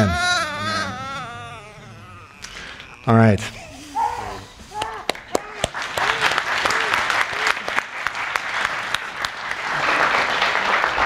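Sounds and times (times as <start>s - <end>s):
infant crying: 0.0s - 7.0s.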